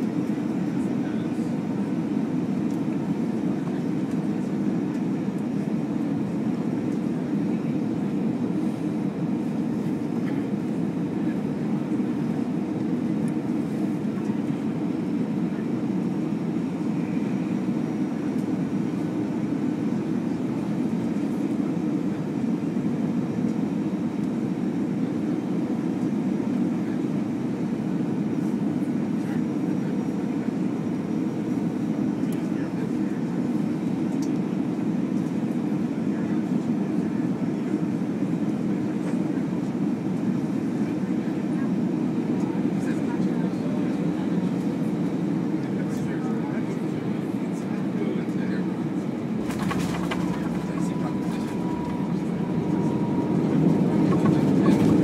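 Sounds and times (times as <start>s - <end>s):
airliner cabin engine rumble: 0.0s - 55.0s.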